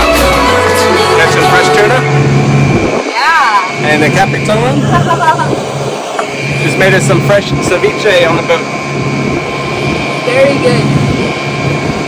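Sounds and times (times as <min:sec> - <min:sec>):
outboard motor droning: 0:00.0 - 0:12.0.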